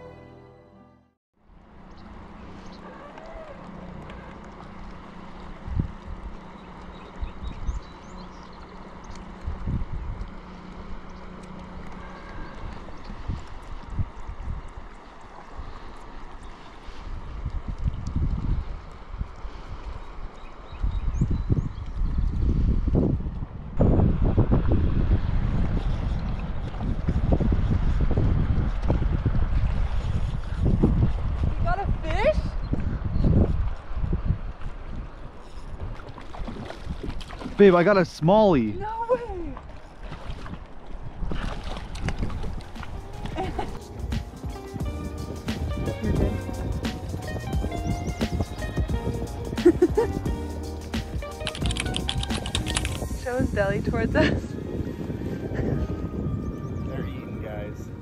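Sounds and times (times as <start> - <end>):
water lapping against hull: 1.5 - 23.6, 24.8 - 56.0
wind buffeting microphone: 2.0 - 58.0.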